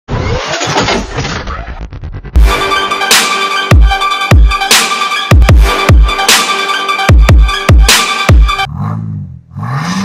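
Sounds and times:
car engine starting and revving: 8.5 - 10.0.

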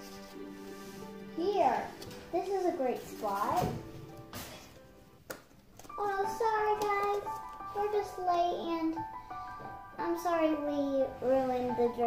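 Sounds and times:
girl's high play-voice: 6.0 - 9.1.

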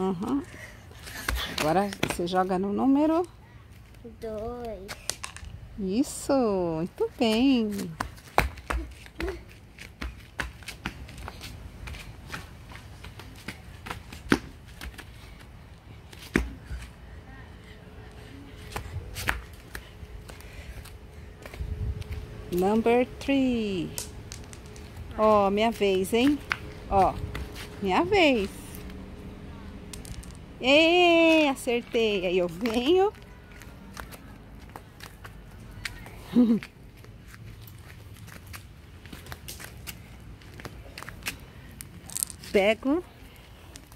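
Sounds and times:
flip-flops slapping on concrete: 0.2 - 4.0, 6.8 - 17.0, 18.6 - 22.9, 23.9 - 29.0, 31.0 - 42.7.

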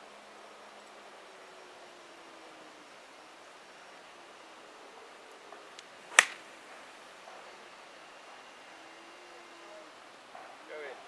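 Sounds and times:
faint outdoor background: 0.0 - 11.0
golf club striking ball: 6.1 - 6.5.

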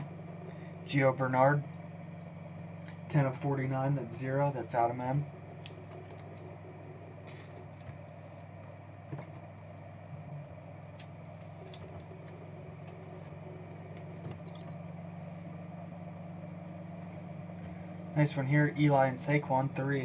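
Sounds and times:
low room hum: 0.0 - 20.0
trading cards rustling in sleeves: 7.2 - 8.7, 11.1 - 14.6.

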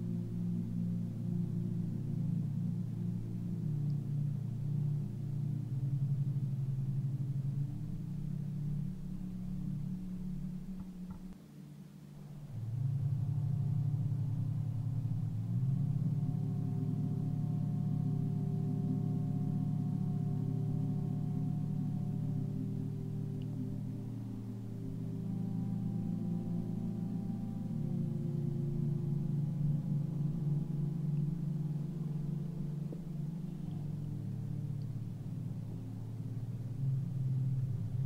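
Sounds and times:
meditation drone music: 0.0 - 38.0.

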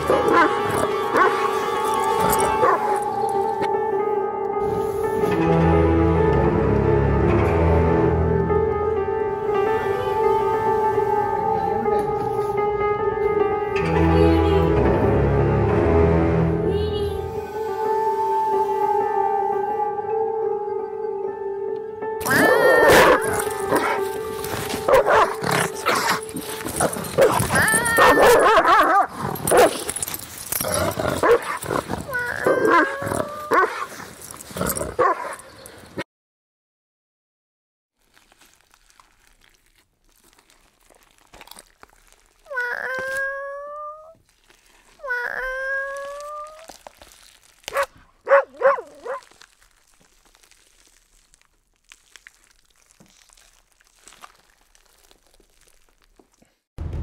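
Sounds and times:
dog barking and yelping: 0.0 - 1.5, 2.4 - 3.0, 22.5 - 24.1, 24.9 - 29.8, 31.2 - 31.6, 32.2 - 33.9, 35.0 - 35.5, 47.7 - 49.3
dog howling: 0.0 - 3.7, 22.3 - 24.2, 24.8 - 29.0, 32.1 - 33.9, 42.5 - 44.2, 45.0 - 46.9
dog yipping: 27.2 - 29.7, 47.7 - 49.4.

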